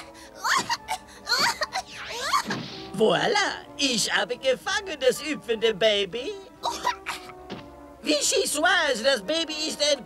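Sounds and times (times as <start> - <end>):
background music: 0.0 - 10.0.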